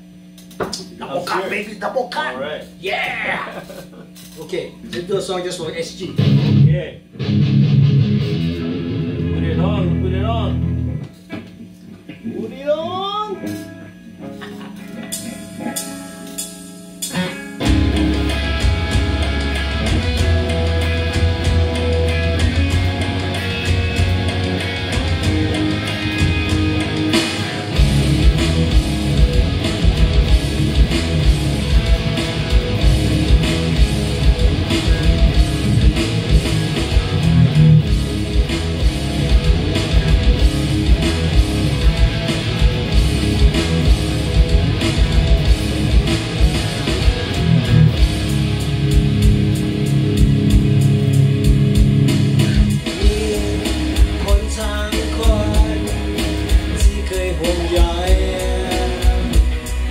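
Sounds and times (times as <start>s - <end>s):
backing track drums and bass: 6.0s - 11.5s, 15.0s - 59.9s
electric guitars playing: 6.2s - 11.2s, 12.2s - 59.9s.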